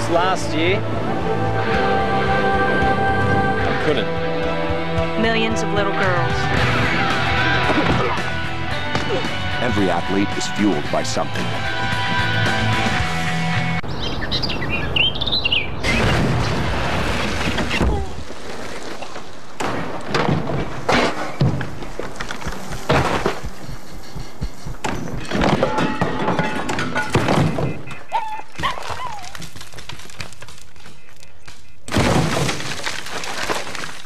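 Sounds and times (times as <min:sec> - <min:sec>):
birds chirping: 0:05.3 - 0:16.7, 0:21.2 - 0:29.4, 0:30.6 - 0:31.9
debris crashing: 0:15.8 - 0:23.6, 0:25.2 - 0:27.9, 0:28.6 - 0:31.0, 0:31.9 - 0:34.0
steady outdoor hiss: 0:20.7 - 0:25.3.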